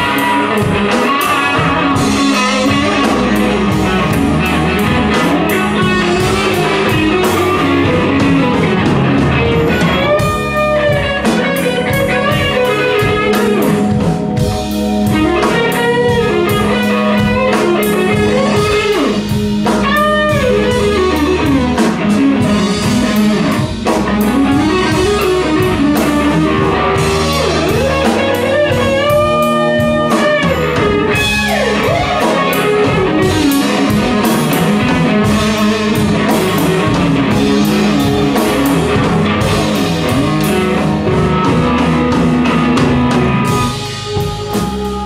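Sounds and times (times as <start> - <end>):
blues band playing: 0.0 - 45.0
electric guitar bent notes: 0.0 - 45.0.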